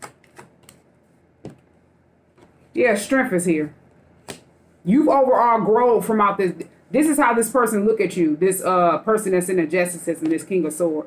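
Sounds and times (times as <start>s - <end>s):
cards clicking on a table: 0.0s - 0.8s.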